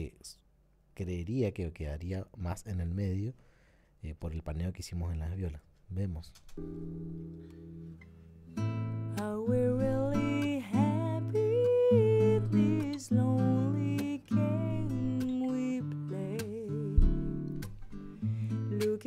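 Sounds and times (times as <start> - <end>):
acoustic guitar: 6.5 - 19.0
person singing: 9.2 - 17.5, 18.3 - 19.0.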